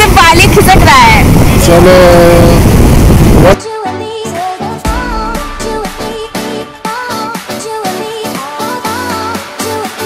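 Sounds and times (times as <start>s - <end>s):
wind buffeting microphone: 0.0s - 3.6s.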